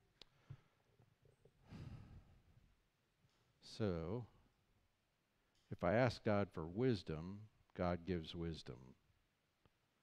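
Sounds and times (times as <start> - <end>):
man breathing softly: 1.6 - 2.6.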